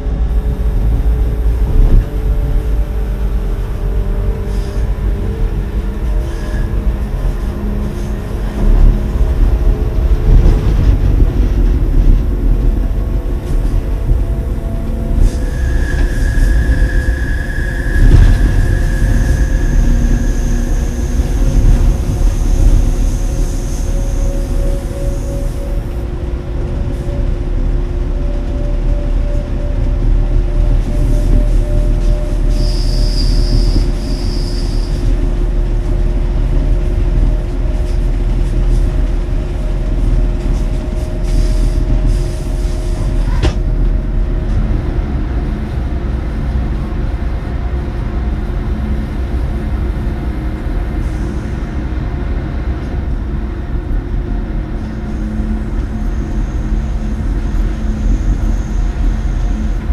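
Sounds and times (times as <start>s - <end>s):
electric train rumbling: 0.0s - 59.9s
train wheels squealing: 4.0s - 8.2s, 14.3s - 26.0s, 28.1s - 36.1s, 54.8s - 59.9s.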